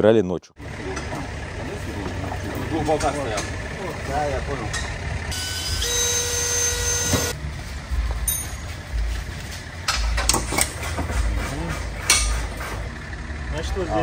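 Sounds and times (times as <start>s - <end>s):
cordless power drill whining: 5.3s - 7.4s.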